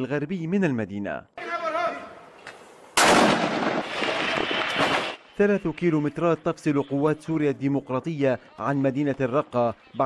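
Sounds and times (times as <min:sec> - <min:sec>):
mortar firing blast: 0:03.0 - 0:05.2.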